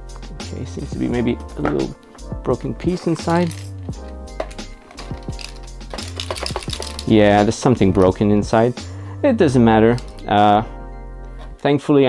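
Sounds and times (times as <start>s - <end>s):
background music: 0.0s - 12.0s
plastic piece rattling in cassette: 4.5s - 7.1s.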